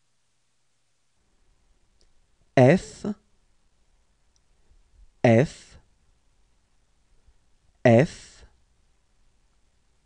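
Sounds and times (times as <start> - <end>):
person speaking a letter: 2.6 - 3.2, 5.2 - 5.8, 7.8 - 8.5.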